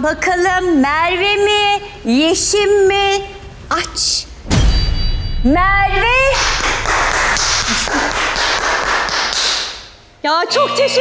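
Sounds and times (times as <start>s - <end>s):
hand clapping: 6.3s - 10.0s.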